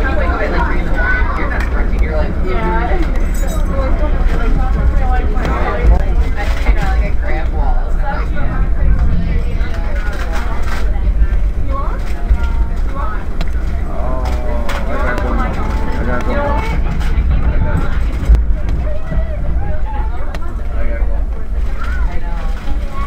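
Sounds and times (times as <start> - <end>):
vehicle cabin rumble: 0.0 - 23.0
voices talking: 0.0 - 23.0.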